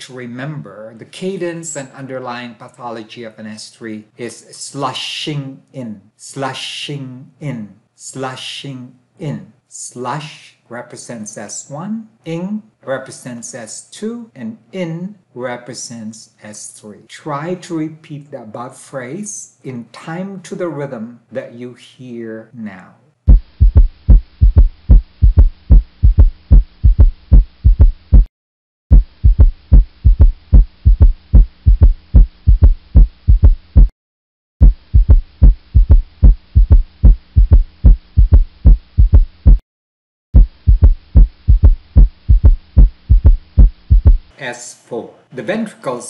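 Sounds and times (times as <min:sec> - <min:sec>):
heartbeat low thuds: 0:23.3 - 0:28.3, 0:28.9 - 0:33.9, 0:34.6 - 0:39.6, 0:40.4 - 0:44.3.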